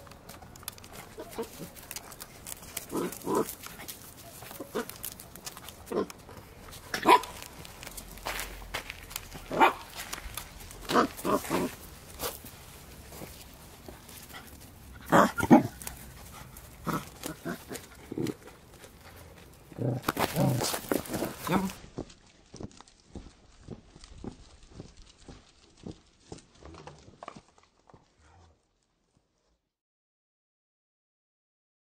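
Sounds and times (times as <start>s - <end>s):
paws on gravel: 0.0s - 29.2s
puppies barking: 0.9s - 7.9s, 9.4s - 12.5s, 13.1s - 19.2s.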